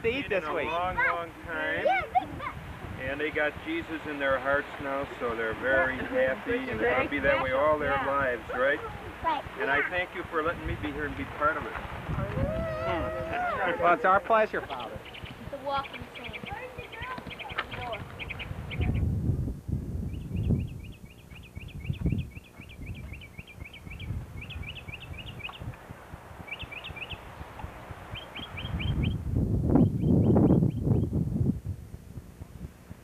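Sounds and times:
microphone rumble: 1.3s - 33.0s
bird trilling chirps: 14.8s - 19.1s, 20.1s - 25.7s, 26.4s - 27.3s, 28.1s - 29.2s, 29.8s - 31.1s.

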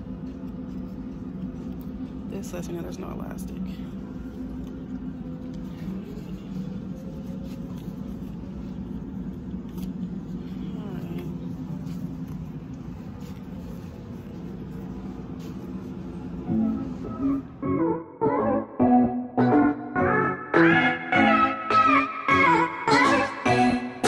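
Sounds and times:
steady low hum: 0.0s - 24.0s
faint indistinct voices: 2.5s - 9.1s
loud music: 16.5s - 24.0s.

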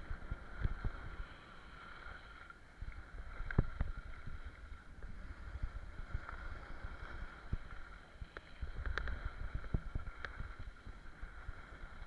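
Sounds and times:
wind rushing over microphone: 0.0s - 1.3s, 2.8s - 12.0s
small knocks and clicks: 8.3s - 9.2s.

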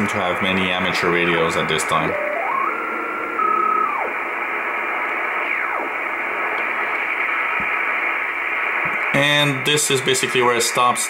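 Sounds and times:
shortwave radio noise hiss: 0.0s - 11.0s
radio carrier whistle: 2.1s - 4.3s.

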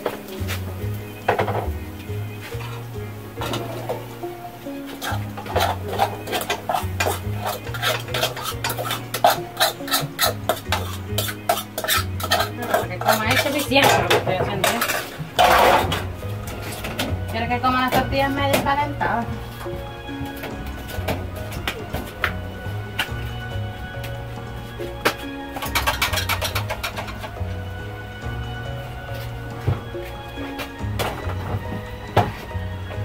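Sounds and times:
dishes and utensils clinking: 0.0s - 23.3s, 24.8s - 27.6s
background music: 0.0s - 33.0s.

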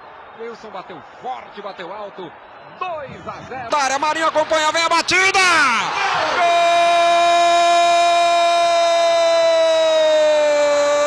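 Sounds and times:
commentator shouting: 3.6s - 11.0s.

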